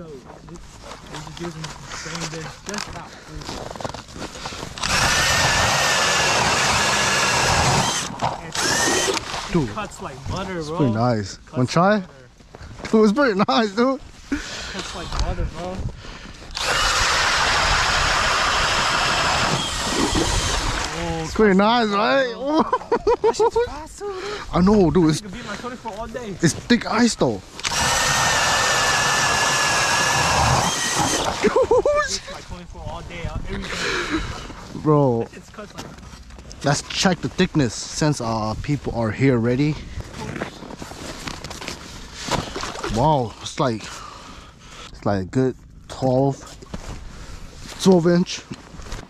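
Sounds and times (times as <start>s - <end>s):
drill boring through ice: 4.7s - 9.7s, 16.5s - 21.2s, 27.6s - 31.6s
ice and slush scraping and sloshing: 6.4s - 9.8s, 40.1s - 43.0s.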